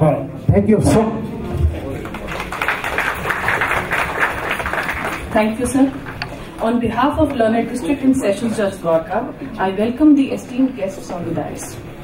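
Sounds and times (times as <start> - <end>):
audience applauding: 1.5 - 6.3.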